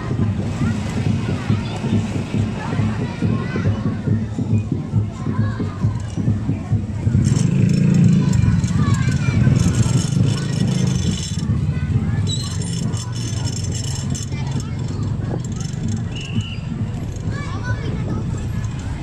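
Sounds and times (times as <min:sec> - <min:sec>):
crowd chattering: 0:00.0 - 0:19.0
vehicle engine running: 0:05.4 - 0:19.0.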